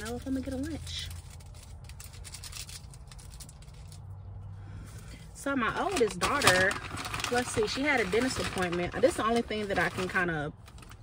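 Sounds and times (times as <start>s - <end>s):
paper packaging rustling: 0.0s - 4.1s, 5.6s - 11.0s.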